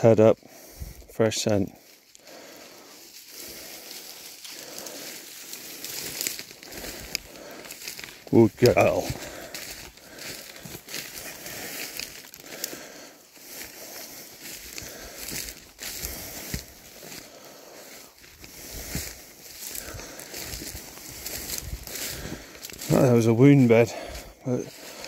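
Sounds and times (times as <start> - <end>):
footsteps through dry undergrowth: 0.0 - 25.0.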